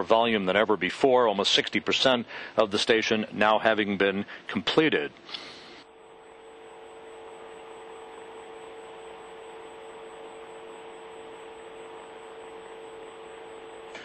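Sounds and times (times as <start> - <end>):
constant low hum: 0.0 - 14.0.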